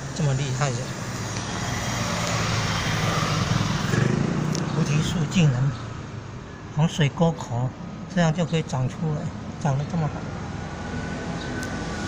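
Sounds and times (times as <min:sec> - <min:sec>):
engine drone passing: 0:00.0 - 0:06.2, 0:08.6 - 0:12.0.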